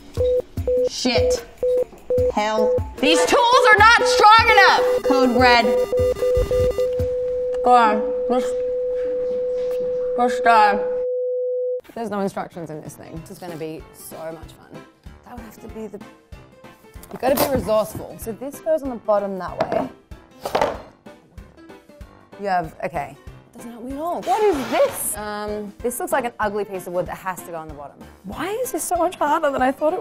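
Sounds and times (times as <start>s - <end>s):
background music: 0.0s - 8.5s, 11.8s - 30.0s
monitor flatline tone: 3.8s - 11.7s
quick monitor beeps: 4.0s - 6.9s
wooden board knock and scrape: 20.4s - 20.9s.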